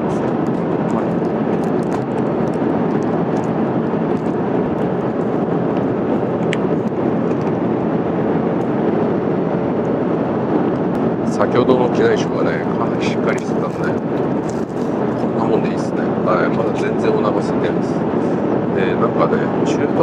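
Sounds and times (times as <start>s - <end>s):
airplane cabin engine rush: 0.0s - 20.0s.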